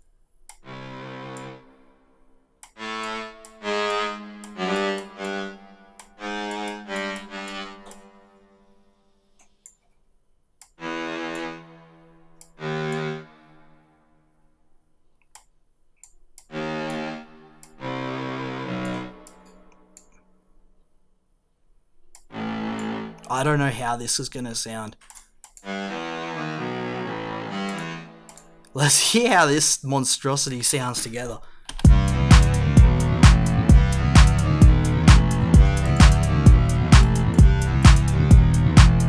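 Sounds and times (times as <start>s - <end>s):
synth cello short notes: 22.3s - 23.8s.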